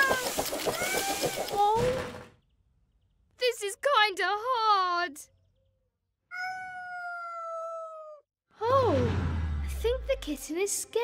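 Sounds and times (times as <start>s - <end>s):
cartoon kitten meowing: 6.3s - 8.2s.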